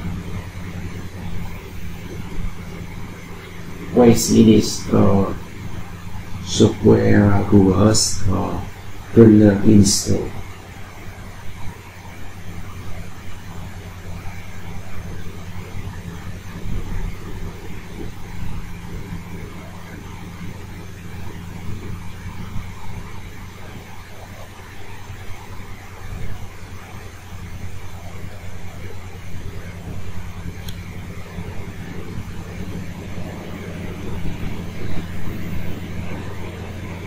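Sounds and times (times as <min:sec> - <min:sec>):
background hiss: 0:00.0 - 0:37.0
low droning hum: 0:00.0 - 0:37.0.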